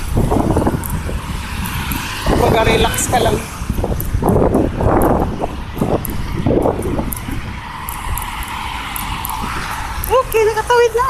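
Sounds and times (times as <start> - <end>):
steady low rumble: 0.0 - 11.0
vehicle passing: 0.0 - 11.0.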